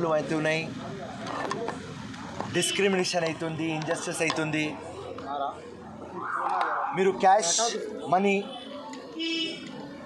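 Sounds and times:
man speaking: 6.2s - 8.5s.

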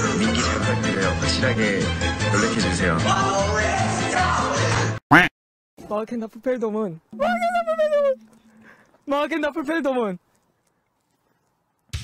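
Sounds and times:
man wailing in fright: 7.2s - 8.3s.

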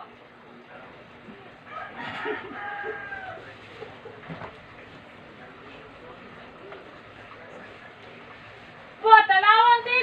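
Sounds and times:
rooster crowing: 1.7s - 3.6s.

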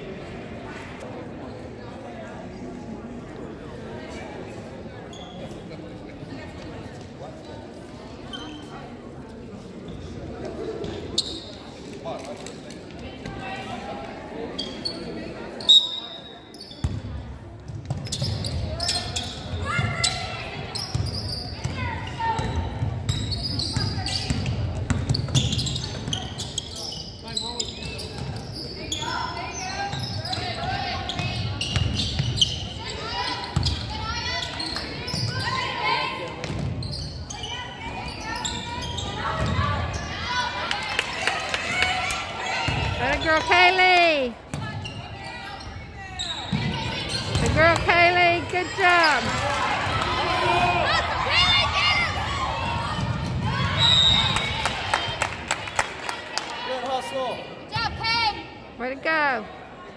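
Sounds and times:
people shouting in a gym: 18.7s - 22.8s, 32.7s - 36.4s, 37.3s - 55.1s.

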